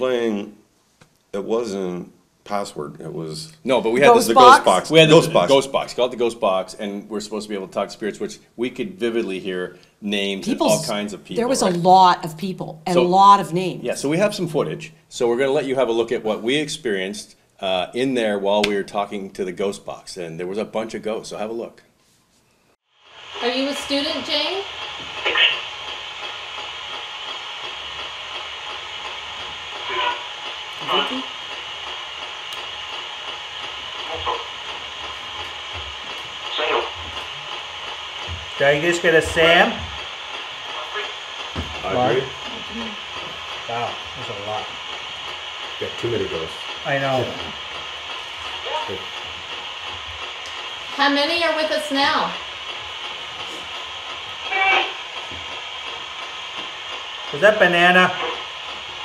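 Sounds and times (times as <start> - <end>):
radio static hiss: 3.7 - 8.1, 8.8 - 16.9, 23.0 - 59.0
chopped radio fragment: 25.2 - 25.6, 36.5 - 37.1.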